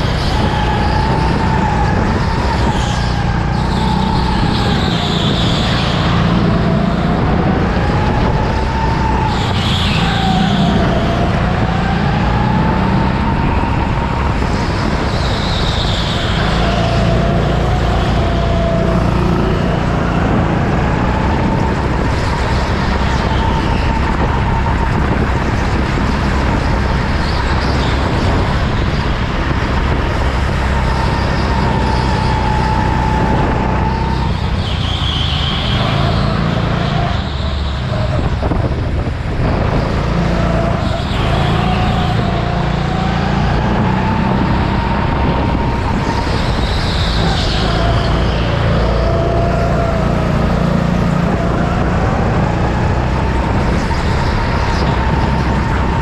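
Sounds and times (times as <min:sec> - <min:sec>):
go-kart motor: 0:00.0 - 0:56.0.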